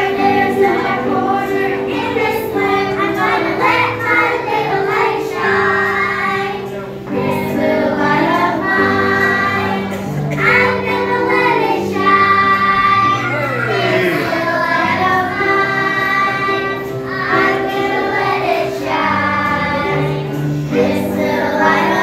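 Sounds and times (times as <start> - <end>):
children singing together: 0.0 - 22.0.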